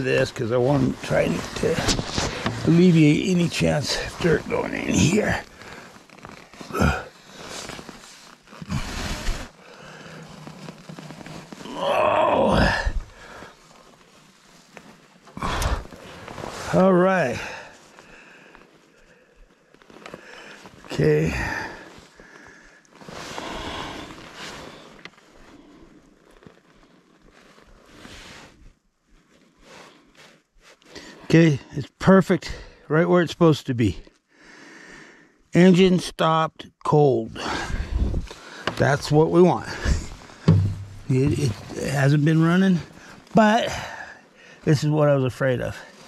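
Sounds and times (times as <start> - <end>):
faint rustling: 0.0 - 11.8, 12.9 - 30.9, 37.7 - 44.8
man grunting and breathing heavily: 15.4 - 15.9.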